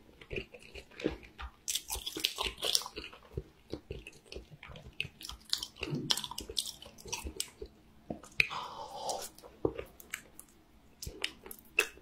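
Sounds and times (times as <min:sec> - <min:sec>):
person chewing food: 0:00.0 - 0:12.0
mouth clicks and smacks: 0:00.3 - 0:12.0.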